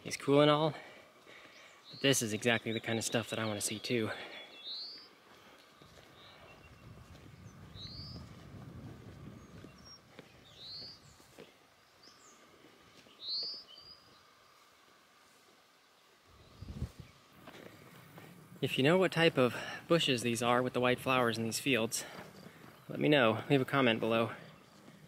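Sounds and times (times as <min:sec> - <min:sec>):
songbird calling: 0:01.3 - 0:08.4, 0:09.3 - 0:14.6, 0:21.1 - 0:25.0
faint low rumble: 0:06.1 - 0:11.3, 0:16.3 - 0:19.6.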